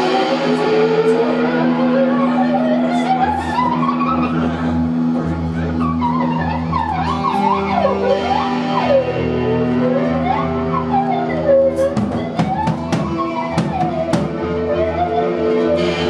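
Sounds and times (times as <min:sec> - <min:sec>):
rock band playing droning jam: 0:00.0 - 0:16.0
sliding lead guitar line: 0:00.0 - 0:16.0.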